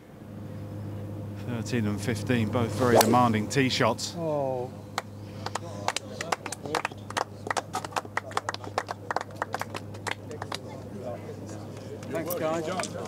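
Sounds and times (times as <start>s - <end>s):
scattered clapping: 5.0s - 10.8s.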